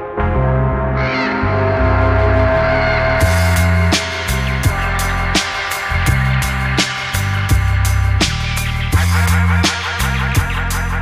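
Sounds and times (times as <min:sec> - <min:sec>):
deep bass line: 0:00.0 - 0:11.0
sustained synth tones: 0:01.2 - 0:08.6.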